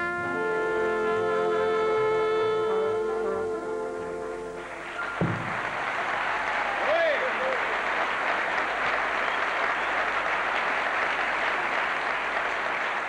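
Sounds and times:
audience applauding: 0:04.6 - 0:13.0
shout from crowd: 0:06.1 - 0:07.6.

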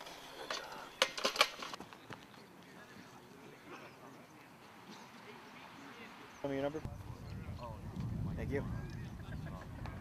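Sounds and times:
low outdoor background: 0:00.0 - 0:10.0.

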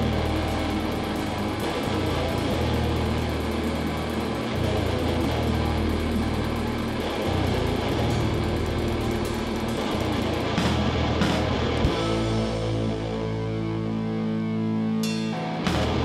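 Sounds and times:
bass long low notes: 0:00.0 - 0:16.0
live rock band playing: 0:00.0 - 0:16.0.

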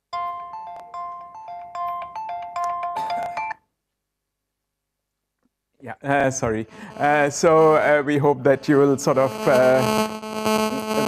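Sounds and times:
phone ringtone chime melody: 0:00.1 - 0:03.6.

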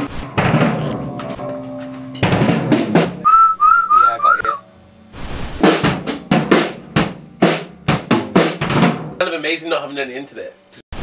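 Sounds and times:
loud band hit: 0:02.2 - 0:03.2, 0:05.6 - 0:09.2
person whistling short notes: 0:03.2 - 0:04.6.

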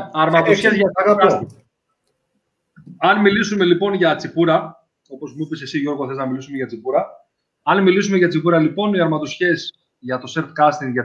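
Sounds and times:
man speaking: 0:00.0 - 0:01.6, 0:02.9 - 0:11.0.

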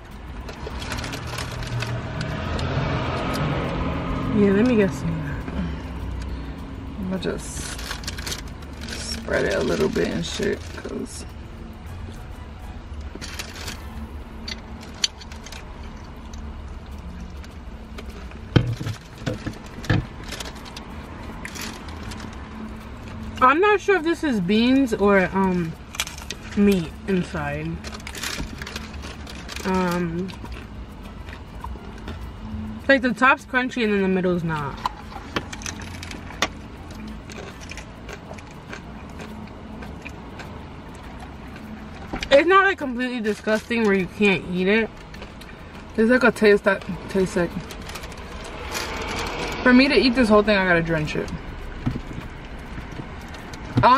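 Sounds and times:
taco shell crunching: 0:00.0 - 0:04.1, 0:07.6 - 0:10.9, 0:13.0 - 0:23.4, 0:25.8 - 0:32.5, 0:34.8 - 0:42.3, 0:44.9 - 0:46.0, 0:46.8 - 0:49.6
low rumble inside car: 0:00.0 - 0:53.9
low steady hum: 0:00.0 - 0:53.9
paper wrappers rustling: 0:00.6 - 0:02.3, 0:07.5 - 0:10.9, 0:27.2 - 0:30.5.

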